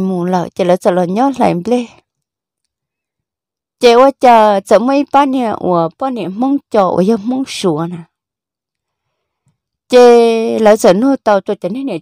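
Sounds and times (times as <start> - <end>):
person speaking: 0.0 - 2.1, 3.8 - 8.1.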